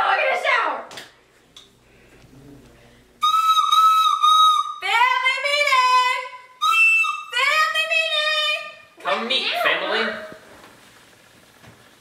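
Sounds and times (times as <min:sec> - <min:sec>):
high whistle-like tone: 0:03.2 - 0:04.8.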